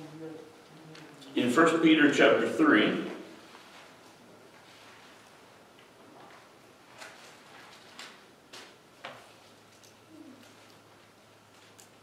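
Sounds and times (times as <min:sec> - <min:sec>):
low electrical hum: 0:00.0 - 0:12.0
pages being turned: 0:06.1 - 0:10.9.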